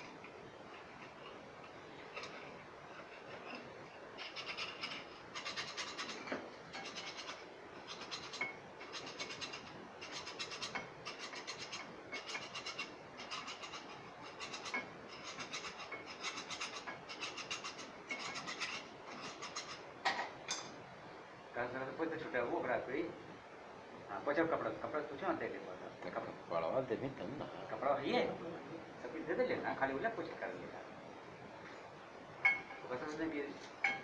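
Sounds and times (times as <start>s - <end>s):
metal tool scraping rusty metal: 0.7s - 19.9s.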